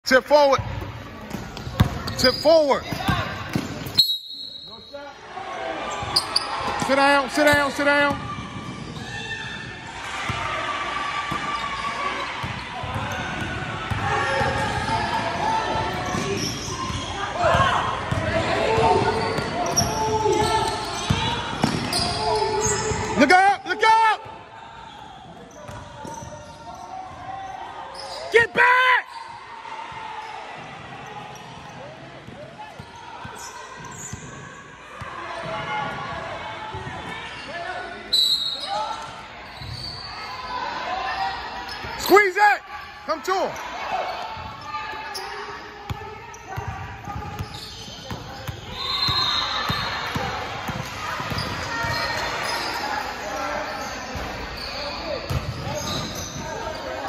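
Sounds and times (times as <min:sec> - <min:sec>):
voices echoing in gym: 0:00.0 - 0:57.0
basketball bouncing on court: 0:00.6 - 0:03.9, 0:12.4 - 0:22.2, 0:25.3 - 0:26.8, 0:30.6 - 0:34.4, 0:45.9 - 0:52.7, 0:55.2 - 0:56.8
loud shoe squeals: 0:02.0 - 0:03.2, 0:03.8 - 0:06.8, 0:15.8 - 0:17.7, 0:18.8 - 0:23.2, 0:24.6 - 0:29.4, 0:32.8 - 0:34.4, 0:37.3 - 0:50.4, 0:51.0 - 0:57.0.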